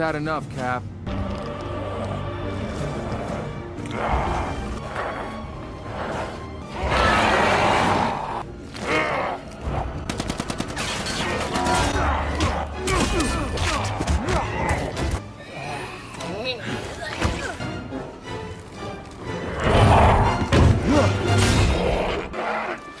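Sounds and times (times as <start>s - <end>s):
background music: 0.0s - 23.0s
rapid gunfire: 10.1s - 11.8s.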